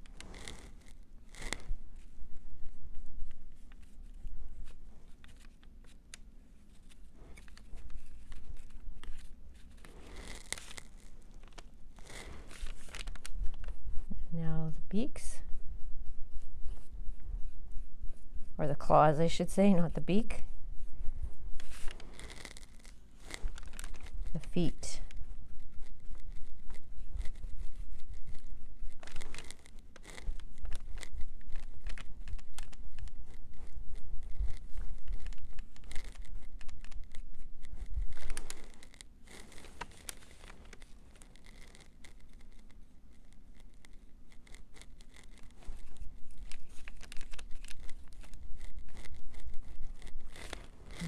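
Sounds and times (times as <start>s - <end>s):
paper rustling: 0.0s - 14.1s, 21.5s - 51.0s.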